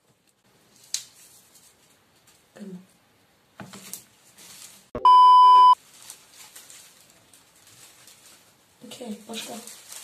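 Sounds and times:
faint background noise: 0.0s - 10.0s
test tone beep: 5.0s - 5.8s.

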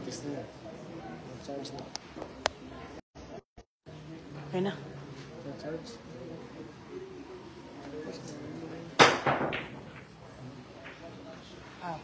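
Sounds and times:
cue striking cue ball: 9.0s - 10.2s
pool balls clacking: 9.0s - 11.2s.

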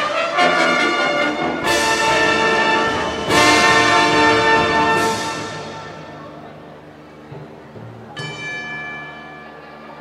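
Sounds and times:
bell-like metal percussion strike: 8.1s - 10.0s.

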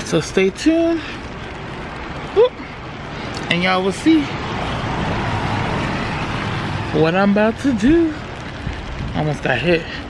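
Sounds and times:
vehicle tyres hissing on wet street: 0.0s - 10.0s.

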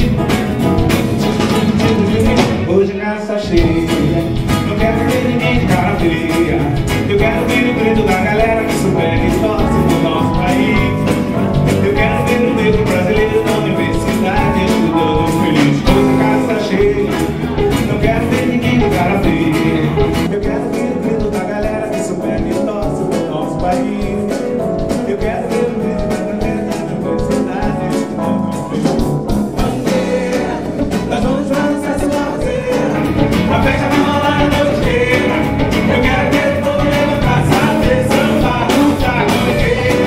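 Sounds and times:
live band playing: 0.0s - 40.0s
person singing: 0.0s - 40.0s.

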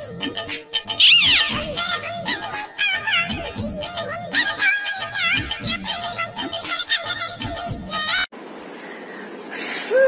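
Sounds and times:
music backing track: 0.0s - 8.2s
person singing: 0.0s - 8.3s.

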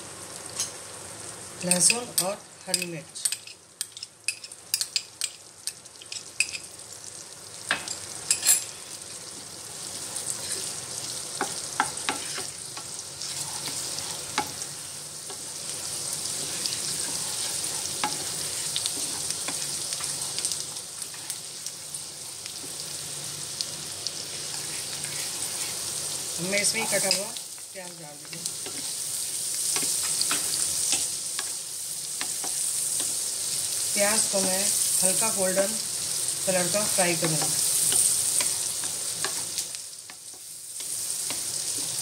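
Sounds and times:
garlic sizzling in frying pan: 0.0s - 42.0s.

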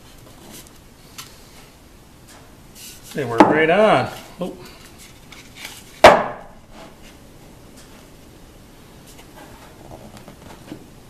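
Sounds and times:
faint handling sounds: 0.0s - 3.4s, 4.0s - 6.0s
wooden board knock: 6.0s - 6.5s.

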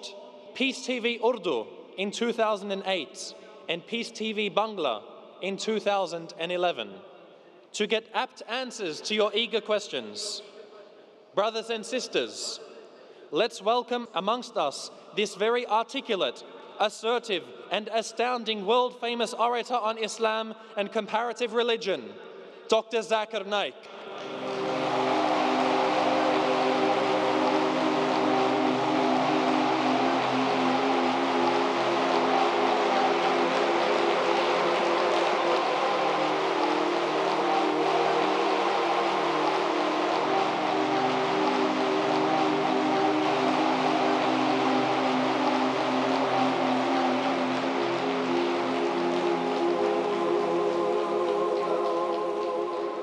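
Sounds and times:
audience applauding: 23.9s - 53.0s
held musical tones: 23.9s - 53.0s.

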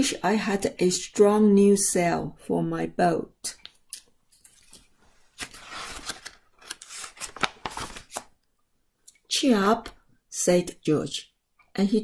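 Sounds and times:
paper page rustling: 4.4s - 8.3s.

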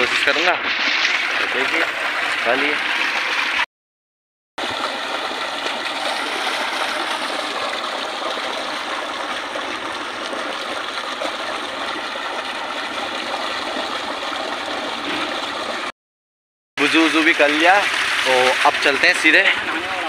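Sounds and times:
water splashing over hands: 0.0s - 3.6s, 4.6s - 15.9s
water gushing from pipe: 0.0s - 3.7s, 4.6s - 15.9s, 16.8s - 20.0s.

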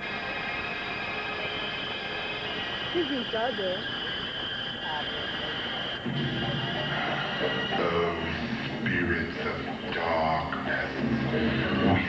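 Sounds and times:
constant high hum: 0.0s - 12.0s
steady rushing noise: 0.0s - 12.0s.

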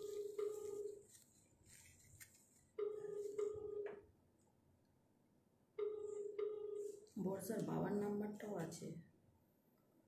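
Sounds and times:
telephone ringback tone: 0.0s - 1.0s, 2.8s - 4.1s, 5.8s - 7.1s.

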